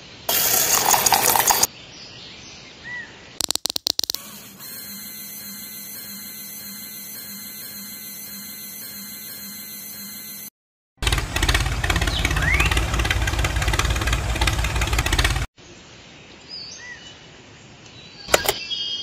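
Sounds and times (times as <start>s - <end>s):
loud engine running: 11.0s - 15.5s.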